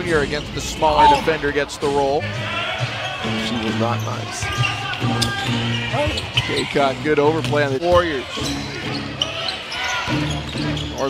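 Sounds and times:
arena music: 0:00.0 - 0:11.0
crowd voices: 0:00.0 - 0:11.0.

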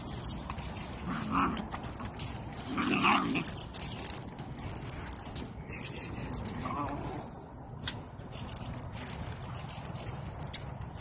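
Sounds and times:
puppies play-fighting: 0:00.0 - 0:11.0.

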